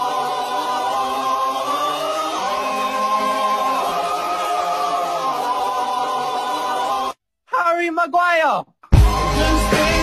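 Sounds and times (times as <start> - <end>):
choir singing held notes: 0.0 - 7.2, 9.0 - 10.0.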